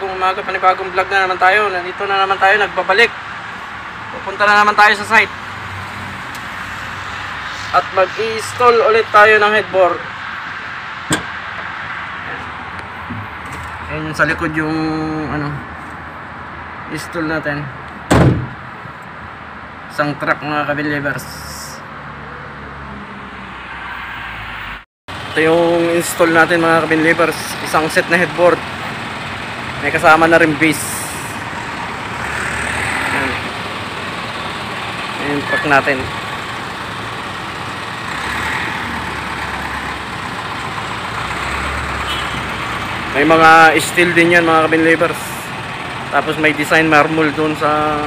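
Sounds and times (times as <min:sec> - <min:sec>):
vehicle engine rumble: 0:00.0 - 0:19.9, 0:20.7 - 0:48.0
truck door slamming: 0:11.0 - 0:11.4, 0:18.0 - 0:18.7.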